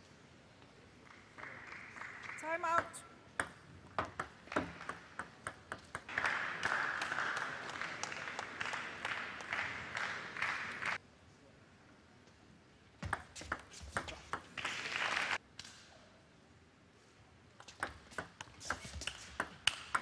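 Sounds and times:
audience applause: 6.1s - 11.0s, 14.6s - 15.4s.

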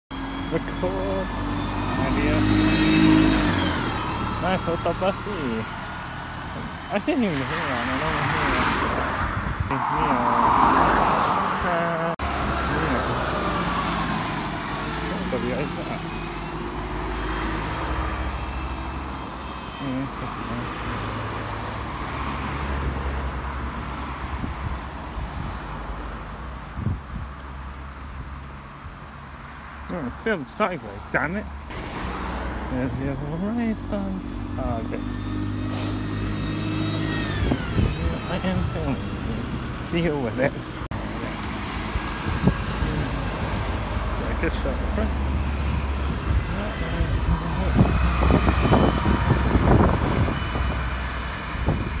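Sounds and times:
cars passing: 0.1s - 52.0s
low steady traffic rumble: 0.1s - 52.0s
voices talking: 0.2s - 5.8s, 6.7s - 16.8s, 17.9s - 21.7s, 32.6s - 35.3s, 37.3s - 41.6s, 42.6s - 49.4s
car driving past: 8.3s - 15.6s.

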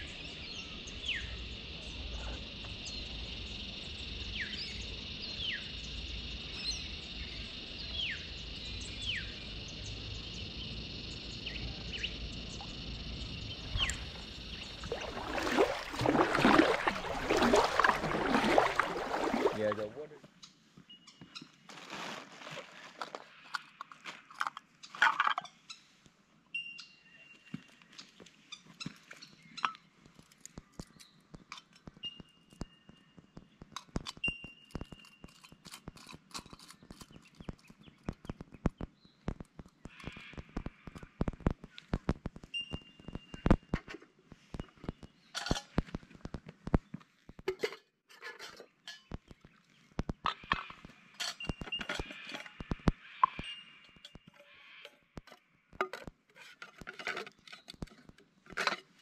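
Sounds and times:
plastic bag rustling: 21.7s - 23.2s
cooking gear clicking and knocking: 33.6s - 40.3s.

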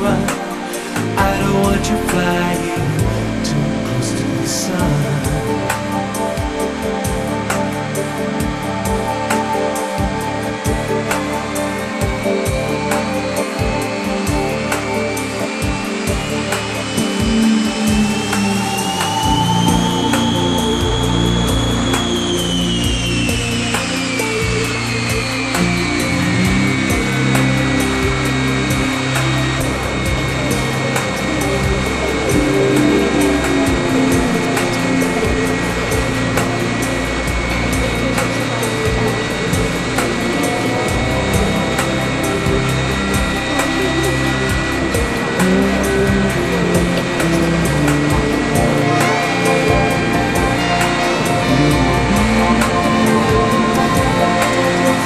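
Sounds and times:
instrumental rock music: 0.0s - 55.0s
jet engine whine: 0.0s - 55.0s.

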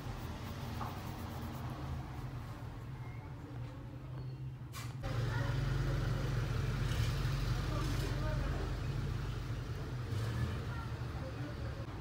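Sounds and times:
faint indistinct voices: 3.0s - 12.0s.

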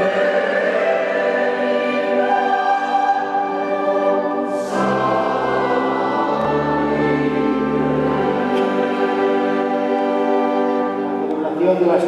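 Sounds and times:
choir singing a hymn: 0.0s - 11.3s
man speaking: 11.3s - 12.0s.

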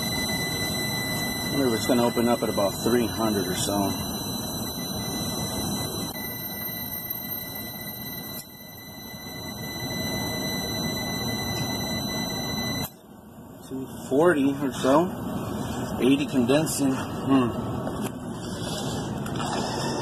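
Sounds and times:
meter beeper steady high tone: 0.0s - 17.6s.

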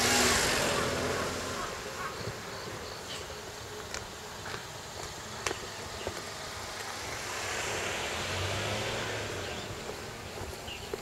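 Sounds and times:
vehicle passing by: 0.0s - 2.6s, 6.2s - 11.0s.

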